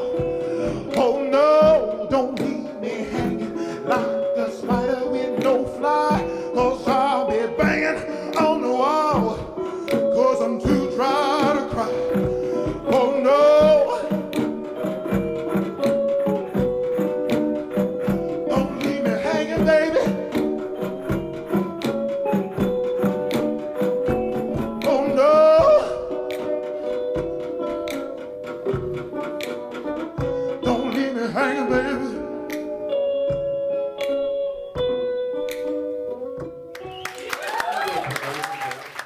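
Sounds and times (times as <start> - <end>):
man singing into microphone: 0.0 - 14.8, 18.4 - 20.9, 24.5 - 26.4, 30.5 - 32.8.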